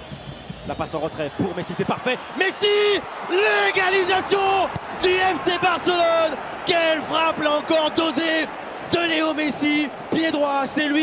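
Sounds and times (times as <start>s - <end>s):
commentator shouting excitedly: 1.9s - 11.0s.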